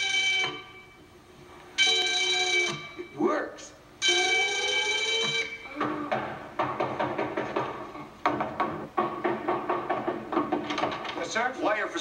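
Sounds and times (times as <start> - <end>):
rapid knocking on wooden door: 6.1 - 11.2.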